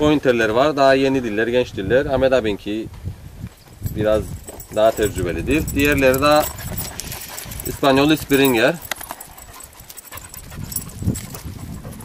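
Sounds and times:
dog panting: 0:04.3 - 0:12.0.

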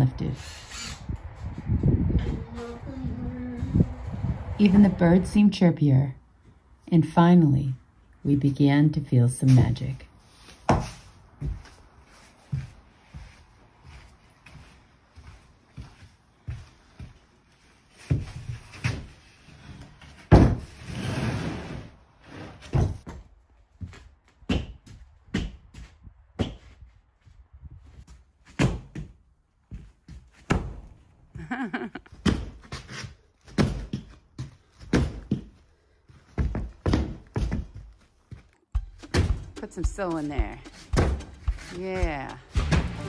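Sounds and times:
knocks and thumps on wood: 0:40.7 - 0:43.0.

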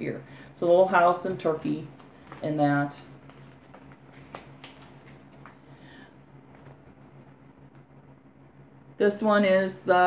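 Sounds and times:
low room hum: 0:00.0 - 0:10.0
paper handling noise: 0:03.2 - 0:05.7, 0:06.5 - 0:07.3.

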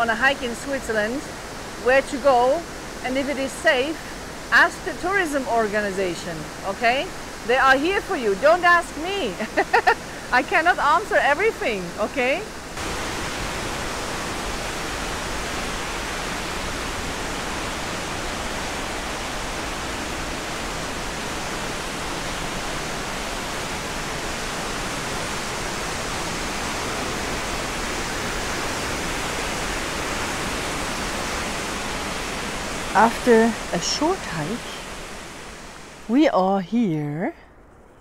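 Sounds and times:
falling water rushing: 0:00.0 - 0:36.3.

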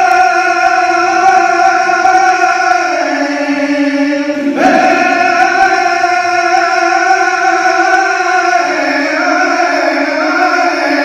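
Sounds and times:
man singing unaccompanied: 0:00.0 - 0:11.0.

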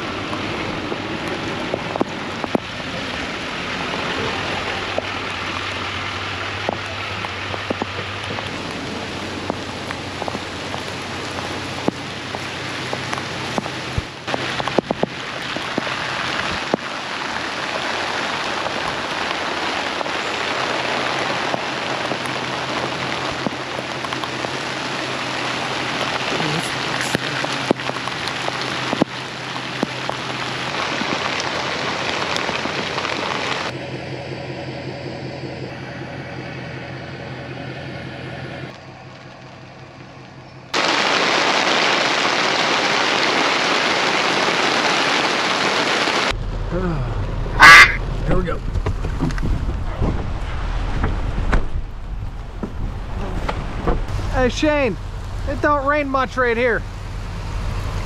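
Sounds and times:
heavy rain on plastic tarp: 0:00.0 - 0:33.8, 0:38.7 - 0:58.0.

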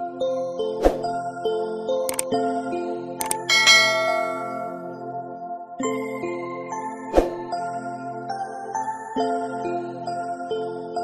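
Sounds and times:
background music: 0:00.0 - 0:11.0
double mouse click: 0:03.2 - 0:03.5
bright bell ding: 0:03.2 - 0:05.0.

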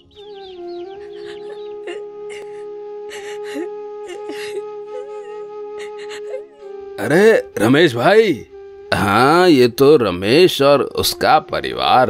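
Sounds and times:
flute-like drone music: 0:00.0 - 0:12.0.

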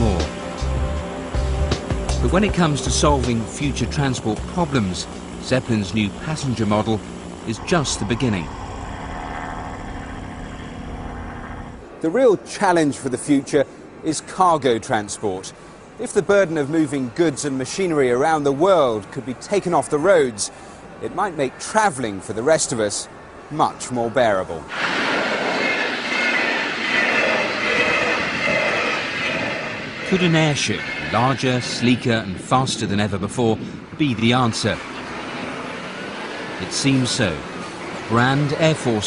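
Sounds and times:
airship propeller engines droning: 0:00.0 - 0:39.0
faint high whine: 0:00.0 - 0:39.0
train wheel and rail noise: 0:00.0 - 0:39.0.

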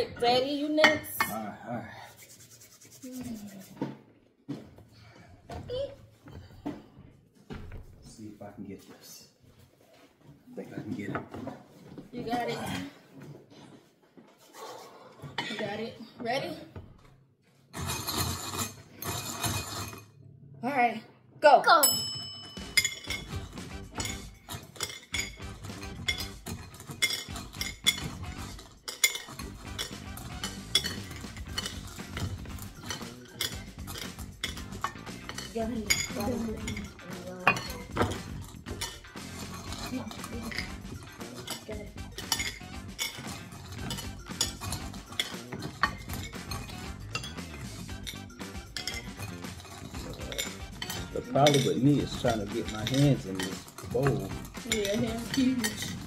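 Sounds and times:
candies rattling in glass bowl: 0:22.8 - 0:56.0.

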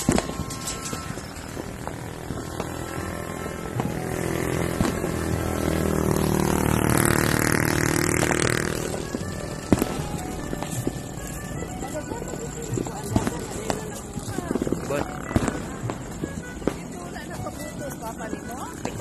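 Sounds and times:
sharp cracks: 0:00.0 - 0:17.3
faint background music: 0:00.0 - 0:19.0
motorcycle passing by: 0:00.0 - 0:19.0.

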